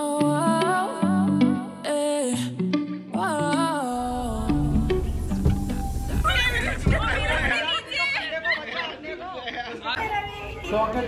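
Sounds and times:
people chattering: 4.4s - 11.0s.

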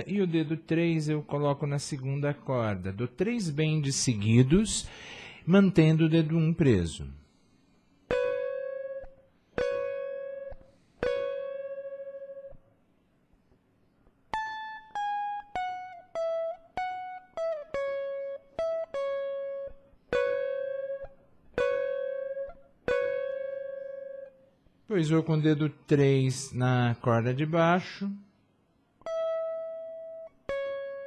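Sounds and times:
clean electric guitar solo: 8.1s - 12.6s, 14.3s - 24.5s, 29.0s - 31.0s.

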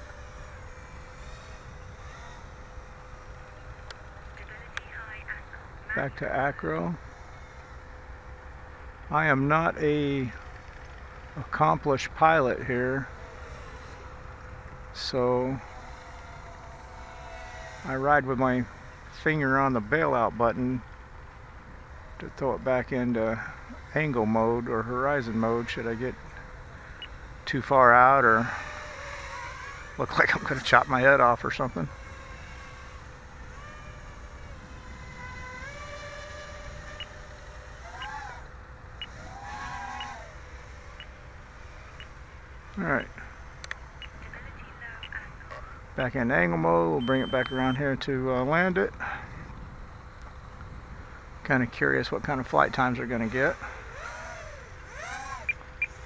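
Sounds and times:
distant quadcopter motor whine: 0.0s - 56.0s
faint short beeps: 47.0s - 47.8s.

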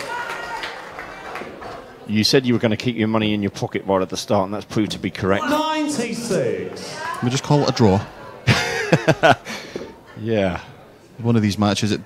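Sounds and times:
murmur of spectators' voices: 0.0s - 12.0s.

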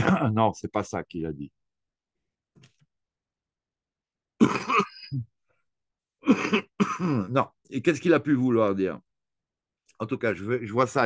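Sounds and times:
man clearing his throat: 0.0s - 0.4s, 4.4s - 5.3s, 6.2s - 7.4s.

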